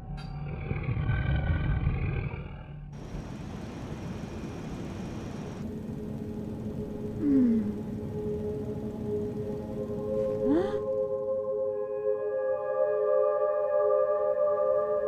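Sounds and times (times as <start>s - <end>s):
pitched drone with low rumble: 0.0s - 12.0s
rushing engine and air noise: 3.0s - 11.0s.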